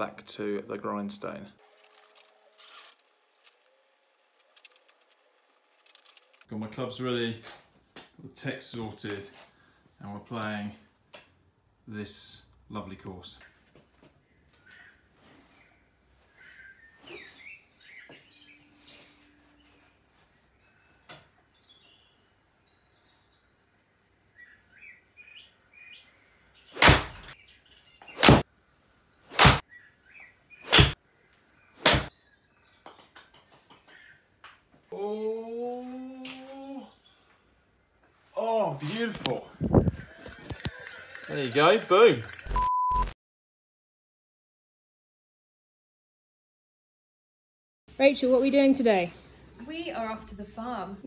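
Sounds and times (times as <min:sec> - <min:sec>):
loud sharp knocks: 0:29.4 - 0:29.6.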